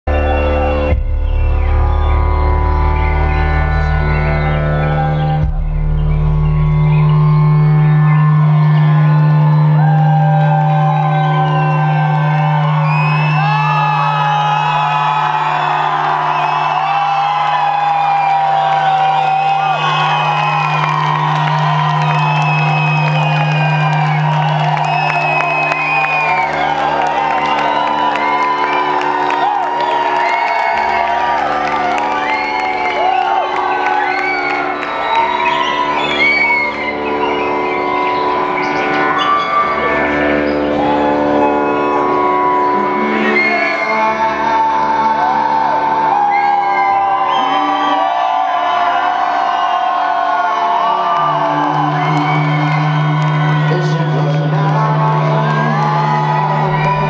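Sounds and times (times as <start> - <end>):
crowd whooping and cheering: 0.0 - 57.0
loud electronic music: 0.0 - 57.0.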